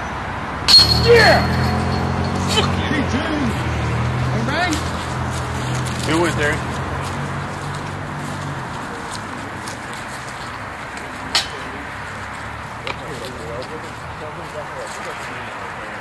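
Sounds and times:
street traffic hum: 0:00.0 - 0:16.0
voices calling out: 0:00.7 - 0:16.0.

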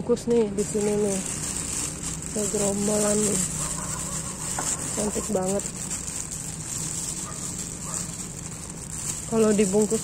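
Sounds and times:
plastic bag crinkling: 0:00.1 - 0:10.0.

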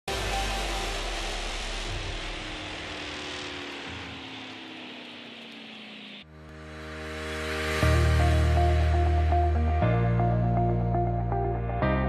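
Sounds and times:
whooshing noise: 0:00.1 - 0:09.9
faint tones gliding downward: 0:00.1 - 0:11.5
low rumble: 0:00.1 - 0:11.8.

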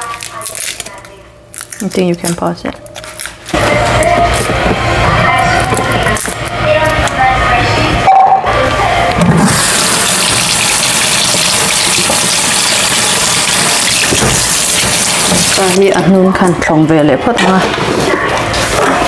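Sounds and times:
tap running into sink: 0:11.3 - 0:15.7.

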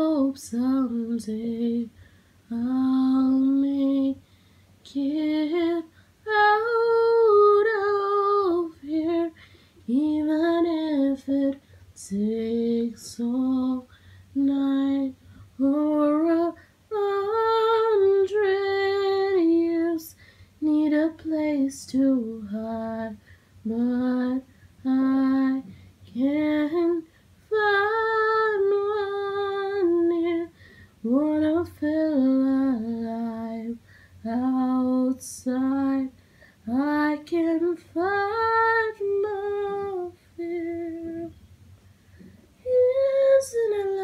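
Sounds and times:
woman singing slowly: 0:00.0 - 0:04.2, 0:04.8 - 0:41.4, 0:42.6 - 0:44.0.

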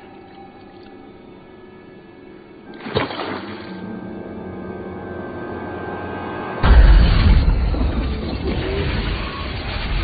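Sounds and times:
dramatic orchestral score: 0:03.4 - 0:10.0
deep boom rumbling: 0:06.6 - 0:10.0.

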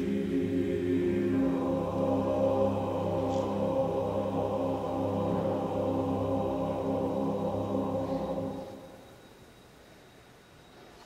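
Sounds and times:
men's choir holding a chord: 0:00.0 - 0:09.2.

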